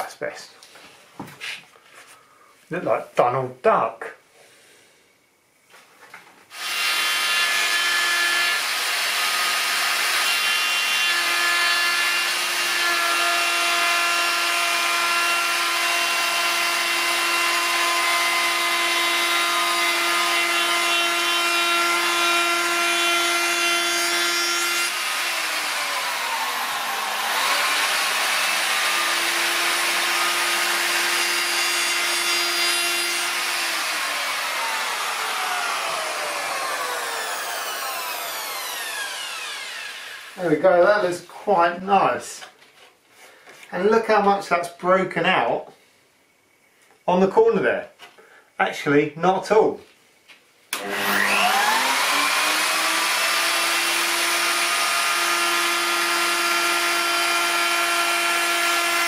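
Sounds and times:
router whining: 6.5 - 40.7, 50.7 - 59.0
router cutting wood rasp: 6.5 - 41.1, 50.7 - 59.0.

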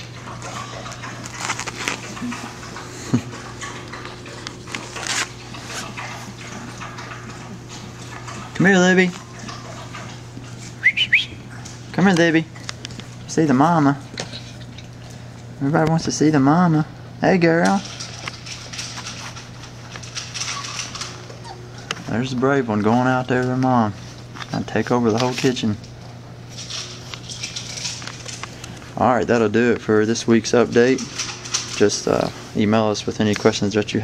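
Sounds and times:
dogs sniffing: 0.0 - 11.9, 17.8 - 23.0
puppies scuffling and playing: 0.0 - 34.0
steady low hum: 0.0 - 34.0.

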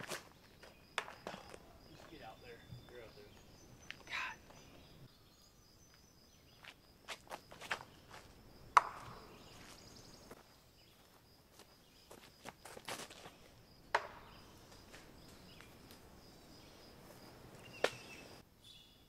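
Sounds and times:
footsteps in woods: 0.0 - 4.9, 5.8 - 18.4.

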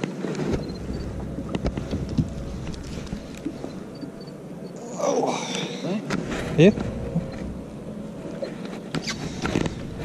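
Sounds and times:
wind rumble on microphone: 0.0 - 4.4.

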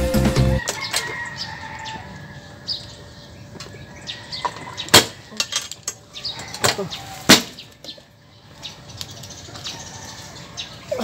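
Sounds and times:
background music: 0.0 - 0.6
birds calling: 0.0 - 11.0.

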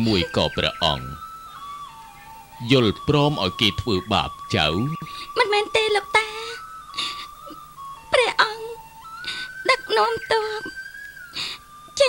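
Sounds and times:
background music long note: 0.0 - 12.0
woman crying while pleading: 5.0 - 7.7, 8.3 - 10.0.

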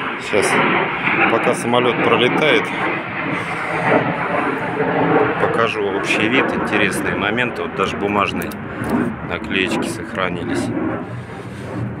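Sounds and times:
airplane flying over: 0.0 - 12.0.

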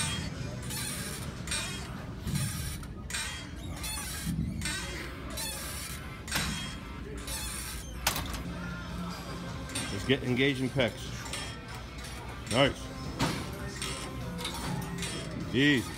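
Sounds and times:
exercise machine creaking and clicking: 0.0 - 15.9
faint music: 0.0 - 15.9.

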